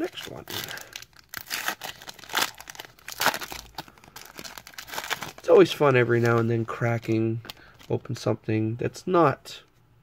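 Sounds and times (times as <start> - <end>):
foil wrapper crinkling and tearing: 0.0 - 8.0.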